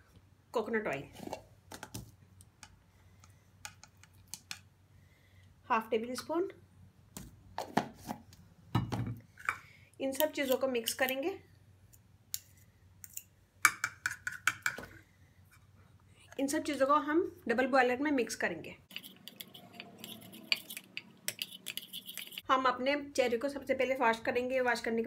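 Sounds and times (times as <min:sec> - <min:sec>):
cutlery scraping ceramic bowl: 0:18.9 - 0:22.4
spoon stirring thick mixture: 0:18.9 - 0:22.5.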